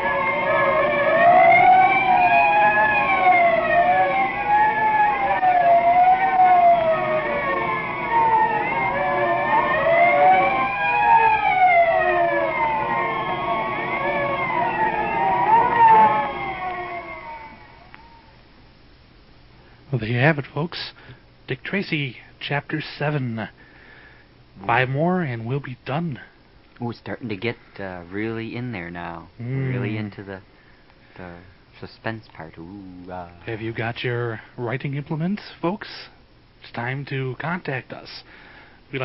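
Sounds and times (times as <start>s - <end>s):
sirens wailing: 0.0s - 18.4s.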